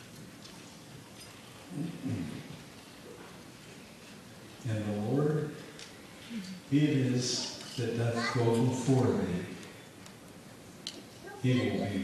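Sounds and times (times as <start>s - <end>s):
background hiss: 0.0s - 12.0s
man murmuring into microphone: 1.7s - 2.6s, 11.4s - 12.0s.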